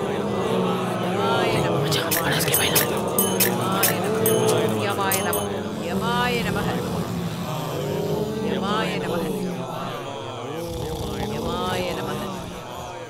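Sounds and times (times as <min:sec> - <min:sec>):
voices with wavering pitch: 0:00.0 - 0:13.0
sharp percussion strikes: 0:01.9 - 0:05.7.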